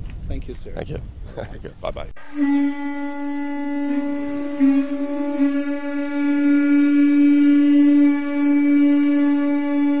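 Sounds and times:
wind instrument long held note: 2.2 - 10.0.

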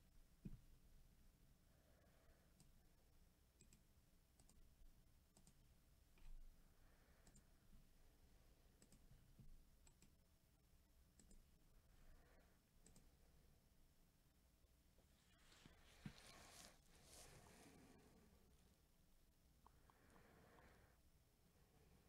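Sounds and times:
faint small clicks: 3.6 - 4.6, 5.3 - 6.4, 7.2 - 7.5, 8.8 - 10.2, 11.2 - 11.5, 12.8 - 13.1.

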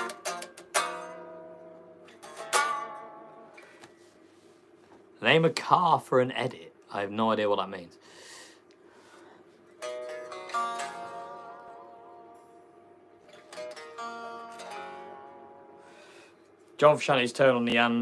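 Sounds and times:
electric guitar picked quietly: 0.0 - 8.0, 9.2 - 18.0.

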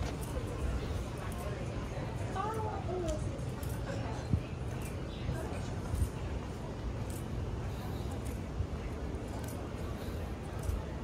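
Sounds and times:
footsteps on sidewalk: 0.0 - 11.0
traffic hum: 0.0 - 11.0.

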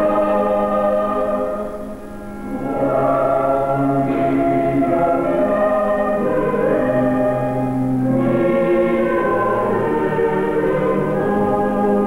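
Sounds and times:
choir singing held chords: 0.0 - 12.0.

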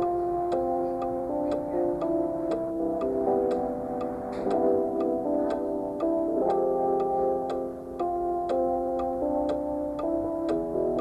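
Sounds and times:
mechanical clock ticking: 0.0 - 11.0
soft sustained background music: 0.0 - 11.0.

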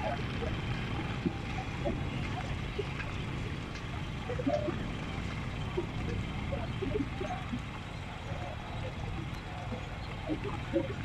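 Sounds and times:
faint distant voices: 0.0 - 11.0
motorcycle rumbling on gravel: 0.0 - 11.0.

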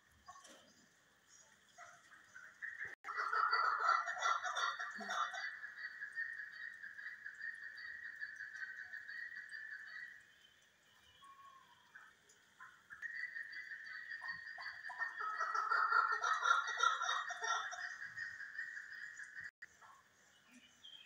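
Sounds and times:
partridges chuckling calls: 2.6 - 10.1, 12.9 - 19.5.

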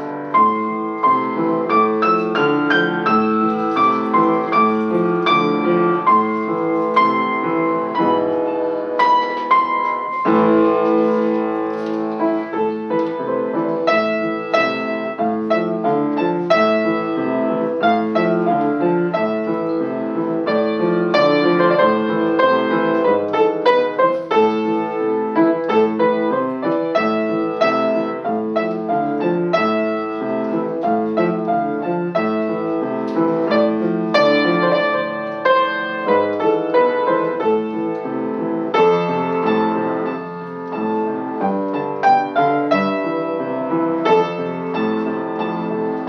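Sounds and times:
upright piano playing: 0.0 - 46.0.

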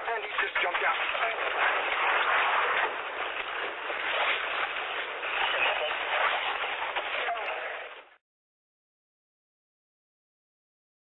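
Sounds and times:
garbled radio voices: 0.0 - 3.9, 4.5 - 8.2
heavy static: 0.0 - 8.2.

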